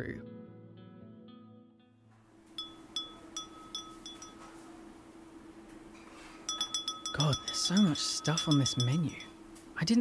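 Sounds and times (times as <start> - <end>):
small metal bell ringing: 2.6 - 4.5, 6.5 - 9.4.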